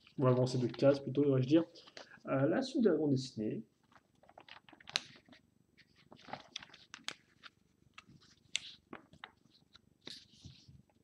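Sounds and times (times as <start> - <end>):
magazine pages rustling: 0.0 - 2.1, 3.8 - 11.0.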